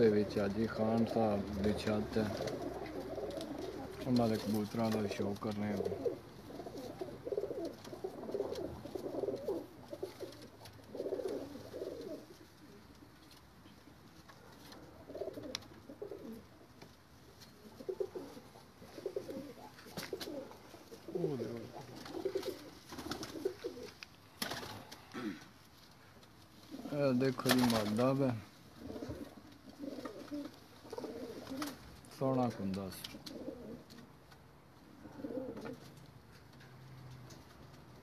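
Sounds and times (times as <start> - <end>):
pigeons cooing: 0.0 - 13.8, 14.7 - 16.7, 17.5 - 25.4, 26.6 - 31.9, 33.1 - 34.1, 34.8 - 36.0.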